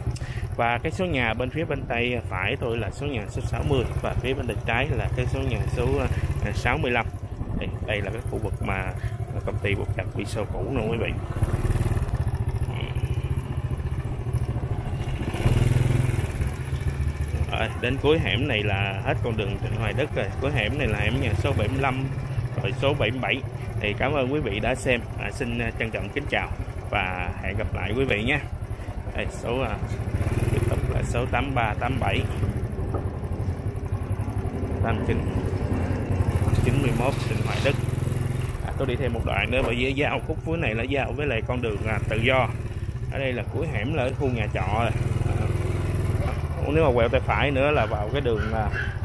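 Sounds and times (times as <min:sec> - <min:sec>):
motorbike engine running: 0:00.0 - 0:49.0.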